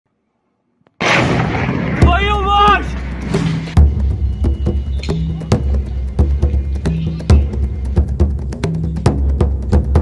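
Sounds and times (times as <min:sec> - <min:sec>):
explosion blast with rumble: 0:01.0 - 0:03.7.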